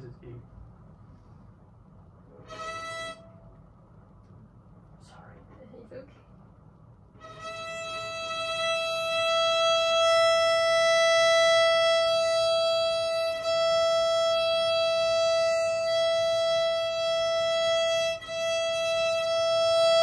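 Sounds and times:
violin string bowed: 2.4s - 3.4s, 7.2s - 20.0s.

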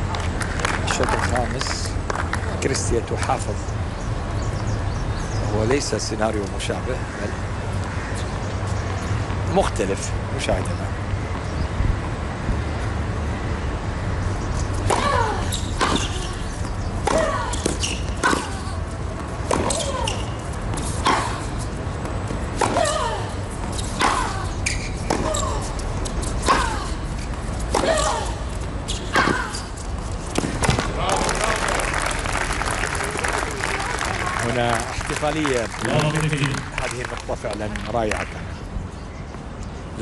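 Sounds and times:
crowd applauding: 30.8s - 38.4s.

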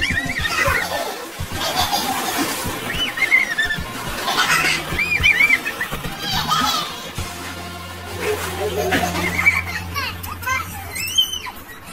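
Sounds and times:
children squealing and calling out: 4.7s - 7.2s, 9.0s - 11.9s.

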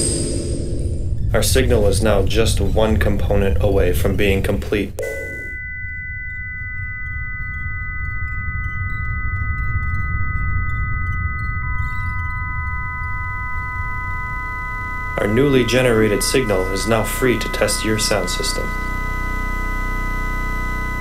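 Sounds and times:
constant low rumble: 0.0s - 21.0s
steady pure electronic tones: 0.0s - 21.0s.

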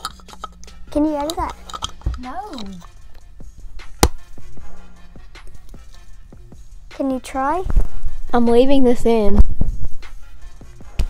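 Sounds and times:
clicks and taps of handled gear: 0.0s - 2.9s
sharp knock: 4.0s - 4.2s.

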